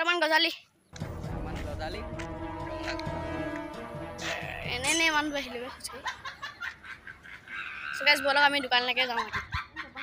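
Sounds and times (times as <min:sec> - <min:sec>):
boy speaking: 0:00.0 - 0:00.7, 0:04.2 - 0:06.0, 0:07.9 - 0:09.4
boy giggling: 0:05.6 - 0:07.8, 0:08.5 - 0:10.0.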